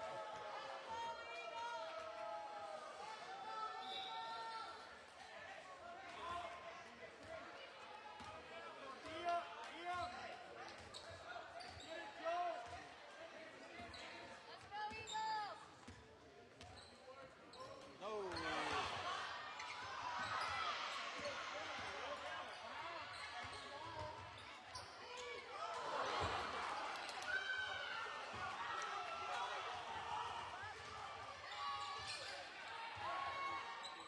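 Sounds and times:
spectators' voices: 18.0 - 34.0.

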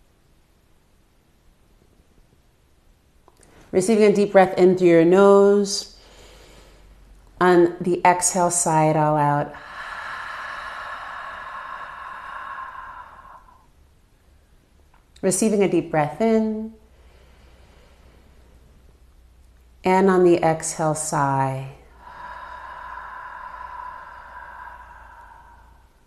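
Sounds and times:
woman exhaling breathily: 9.5 - 13.7, 21.8 - 26.0.

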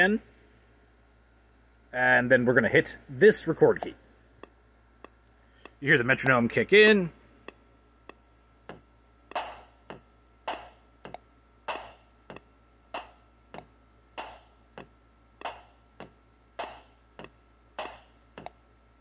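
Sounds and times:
drum loop: 8.7 - 12.4.

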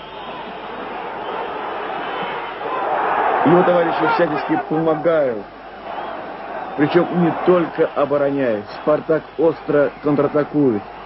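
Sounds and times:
stadium crowd roar: 0.0 - 11.0.

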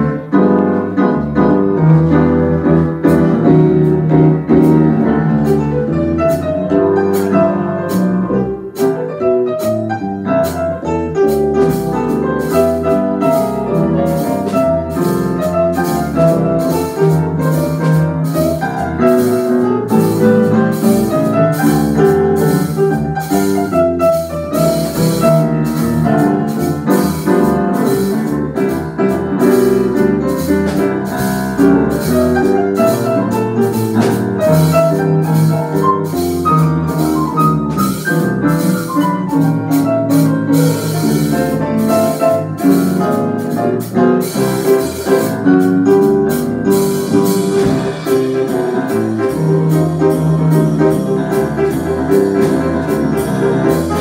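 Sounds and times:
electric bass: 0.0 - 54.0
grand piano chords and melody: 0.0 - 54.0
drum kit cymbals: 11.2 - 54.0.

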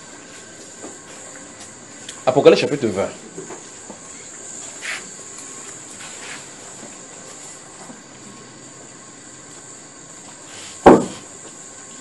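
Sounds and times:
room noise hiss: 0.0 - 12.0
loud short knock: 10.8 - 11.2.

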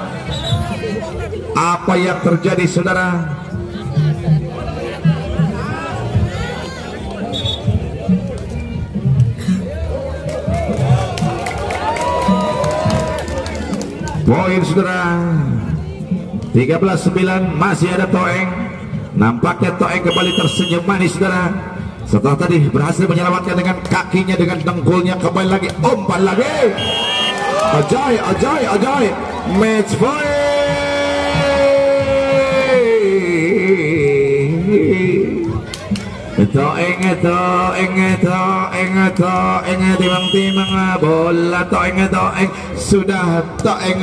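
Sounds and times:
crowd shouting and cheering: 0.0 - 18.5, 22.8 - 44.0.

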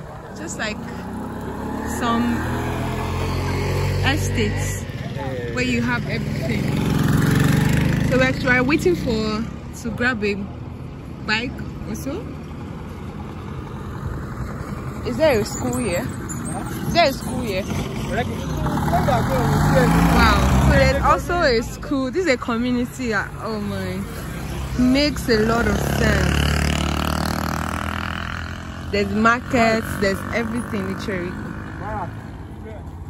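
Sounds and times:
minibus engine rumbling: 0.0 - 33.0
road noise: 0.0 - 33.0.

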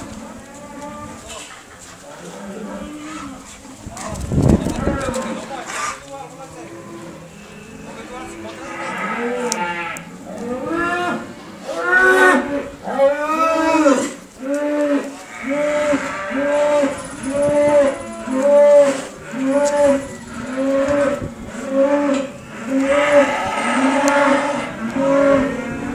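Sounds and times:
calves mooing: 6.7 - 25.9.

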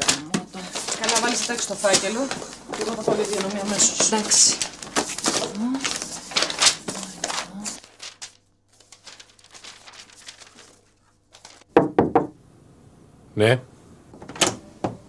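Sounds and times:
low steady hum: 0.0 - 11.7
knocks on a door: 11.7 - 12.4.

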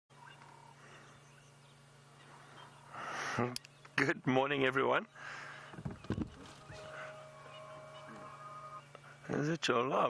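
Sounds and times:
faint low hum: 0.1 - 10.0.

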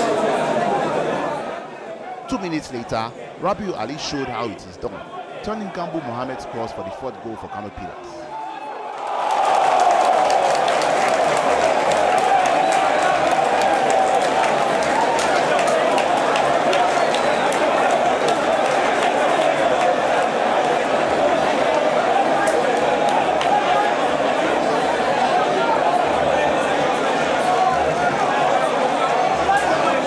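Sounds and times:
stadium crowd cheering and chanting: 0.0 - 30.0.

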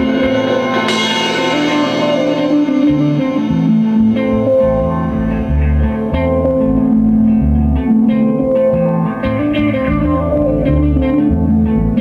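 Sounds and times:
bass notes: 0.0 - 12.0
sustained guitar tones: 0.0 - 12.0.

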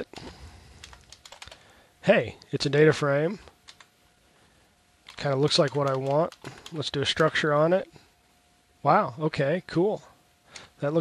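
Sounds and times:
computer keyboard typing: 0.8 - 1.7, 3.6 - 3.9, 5.1 - 7.4.

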